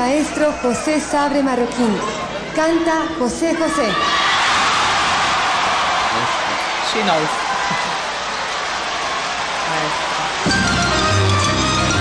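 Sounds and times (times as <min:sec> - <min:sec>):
audience applauding and cheering: 0:04.2 - 0:12.0.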